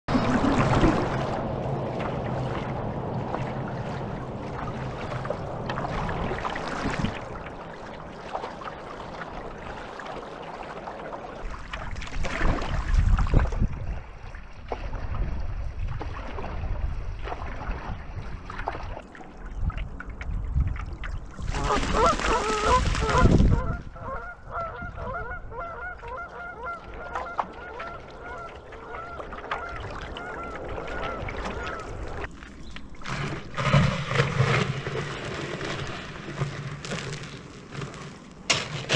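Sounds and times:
paddle blade dipping in water: 0:00.1 - 0:38.9
small water splashes: 0:00.1 - 0:38.9
water rushing along a board hull: 0:00.1 - 0:38.9
geese honking: 0:21.6 - 0:29.2.

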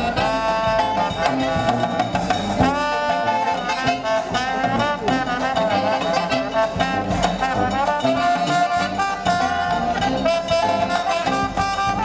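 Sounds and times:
jazz band playing: 0:00.0 - 0:12.0
saxophones: 0:00.0 - 0:12.0
trombone: 0:00.0 - 0:12.0.

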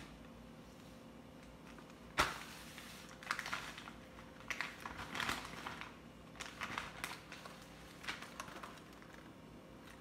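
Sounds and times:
plastic packet crinkling: 0:01.4 - 0:10.0.

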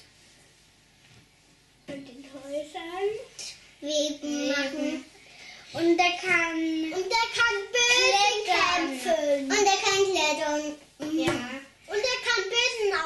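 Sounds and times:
young children talking: 0:01.9 - 0:05.2, 0:05.8 - 0:13.0.

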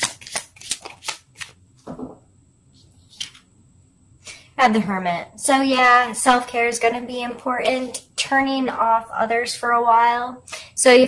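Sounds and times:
cards being shuffled: 0:00.0 - 0:02.0, 0:03.0 - 0:03.4.

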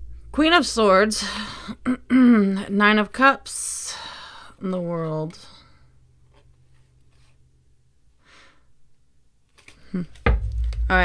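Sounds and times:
low steady hum: 0:00.0 - 0:06.4, 0:10.0 - 0:11.0
cards rustling and scraping: 0:06.2 - 0:07.4, 0:09.5 - 0:09.9.

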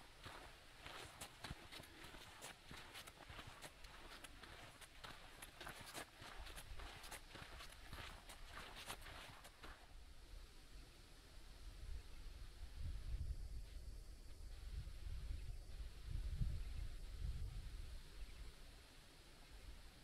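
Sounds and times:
footsteps on sandy dirt: 0:00.0 - 0:10.0.

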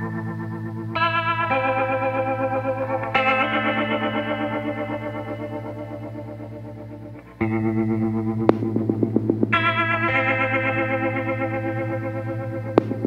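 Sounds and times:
wavering instrumental chords: 0:00.0 - 0:13.0.

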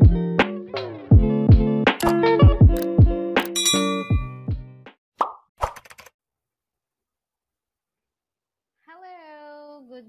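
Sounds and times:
click sound effect: 0:02.0 - 0:02.2, 0:02.8 - 0:04.1
pop sound effect: 0:05.2 - 0:05.9.

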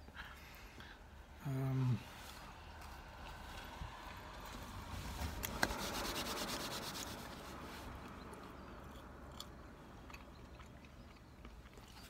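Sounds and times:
rasping rubbing strokes: 0:05.4 - 0:07.8.

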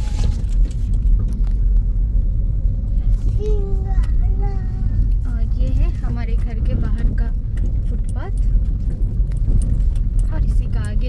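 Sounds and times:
vehicle rumble: 0:00.0 - 0:11.0.

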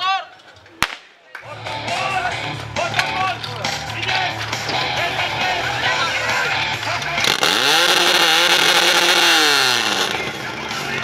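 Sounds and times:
people shouting and cheering: 0:00.0 - 0:08.6
pump engine droning: 0:04.7 - 0:10.8.

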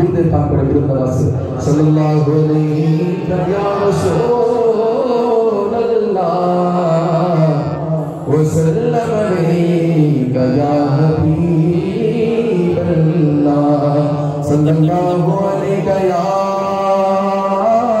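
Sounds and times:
man singing into a microphone: 0:00.0 - 0:18.0.

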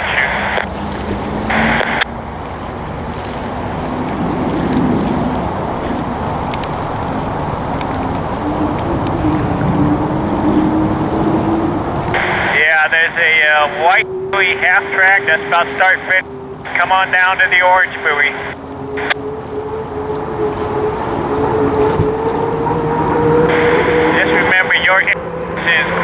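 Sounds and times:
wind noise on microphone: 0:00.0 - 0:12.6, 0:18.4 - 0:24.4
distant hydroplane turbine whine: 0:00.0 - 0:26.0.

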